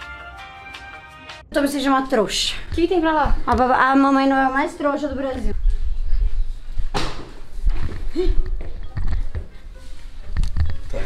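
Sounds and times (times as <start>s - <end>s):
footsteps: 2.5s - 11.0s.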